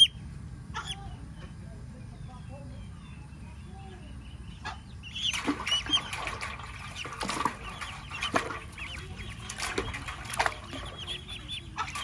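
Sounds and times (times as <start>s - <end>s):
ducklings peeping: 0.0s - 12.0s.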